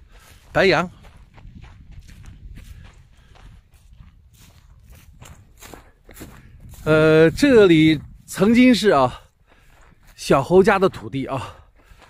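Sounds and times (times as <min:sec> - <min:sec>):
footsteps through dry grass: 0:00.0 - 0:12.0.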